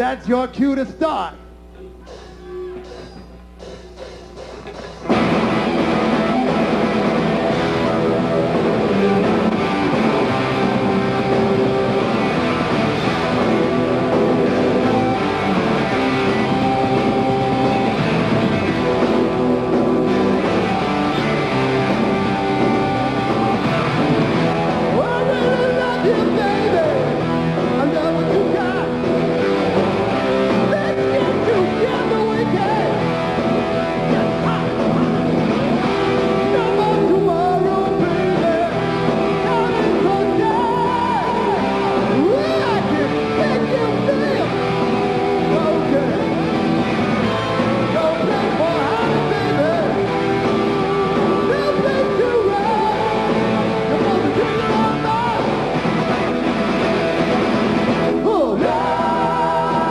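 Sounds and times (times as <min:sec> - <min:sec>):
live hard rock band: 0:02.0 - 0:59.9.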